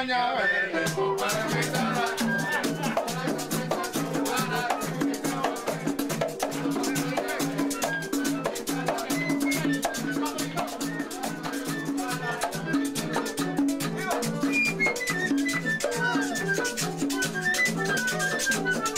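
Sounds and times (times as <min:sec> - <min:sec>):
voices singing: 0:00.0 - 0:18.9
hand percussion: 0:00.8 - 0:18.9
hand drums beating: 0:00.9 - 0:18.9.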